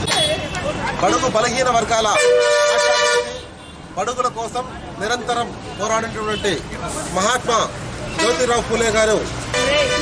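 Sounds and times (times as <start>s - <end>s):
vehicle horn honk: 2.1s - 3.5s, 9.5s - 10.0s.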